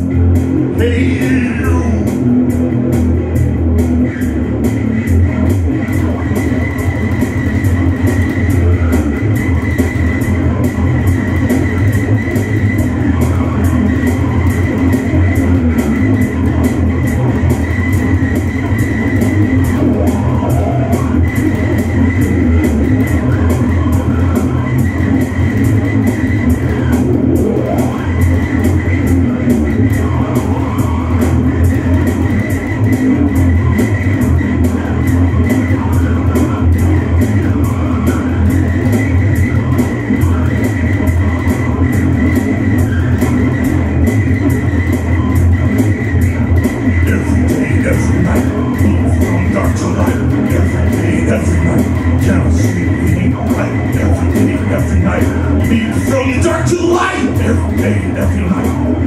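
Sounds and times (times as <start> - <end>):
electric bass guitar: 0.0 - 59.0
heavy rock instrumental: 0.0 - 59.0.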